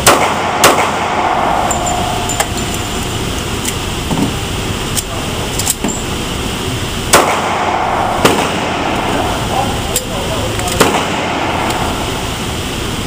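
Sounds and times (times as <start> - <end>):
sharp gunshots: 0.0 - 2.6, 7.1 - 9.2, 10.7 - 11.9
indoor range noise: 0.0 - 13.0.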